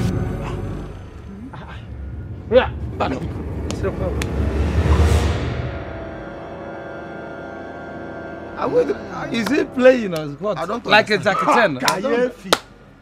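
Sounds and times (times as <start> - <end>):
eerie film score music: 0.0 - 11.4
whoosh and low rumble: 0.9 - 6.6.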